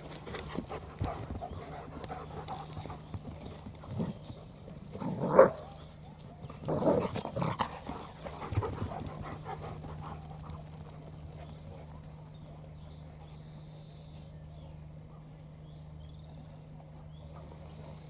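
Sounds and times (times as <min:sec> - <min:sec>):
dogs growling: 0:00.1 - 0:10.6
dogs vocalizing in play: 0:04.9 - 0:10.6.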